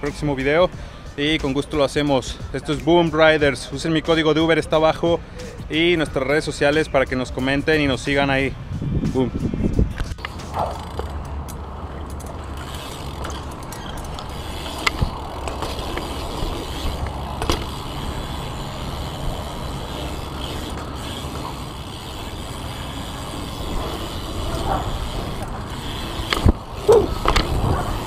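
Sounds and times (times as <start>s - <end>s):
bike rolling over concrete: 9.8s - 28.0s
sharp knocks from bike: 13.0s - 18.0s, 25.3s - 28.0s.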